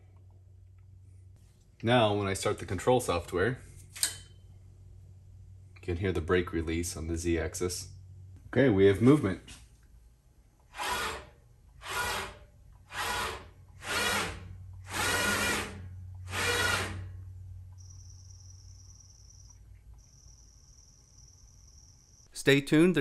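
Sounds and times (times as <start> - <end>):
low steady hum: 0.0 - 10.7
faint high whine: 17.7 - 23.0.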